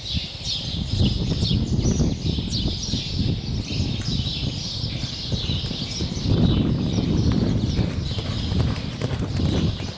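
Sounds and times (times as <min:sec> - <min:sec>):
horse hoofbeats galloping on grass: 0:04.9 - 0:09.9.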